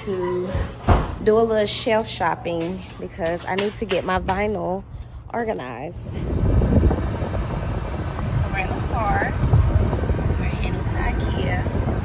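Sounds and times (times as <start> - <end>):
people talking: 0.0 - 0.6, 1.2 - 6.2, 8.3 - 9.4, 10.4 - 11.8.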